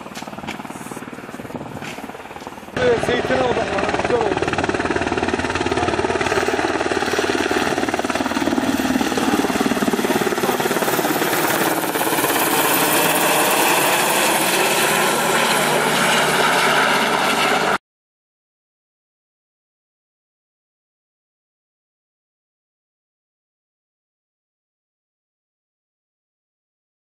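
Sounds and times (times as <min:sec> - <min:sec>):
helicopter rotor and turbine: 0:00.0 - 0:17.8.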